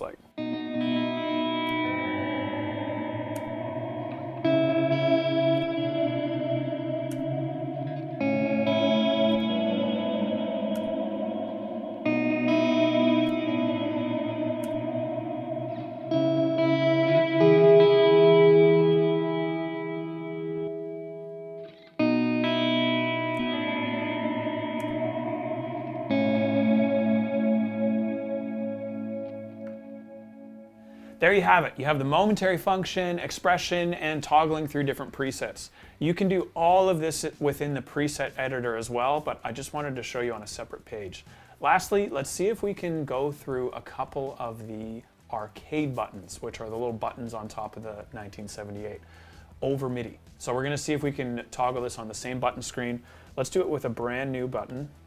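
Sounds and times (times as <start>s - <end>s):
electric guitar chords with reverb: 0.4s - 31.2s.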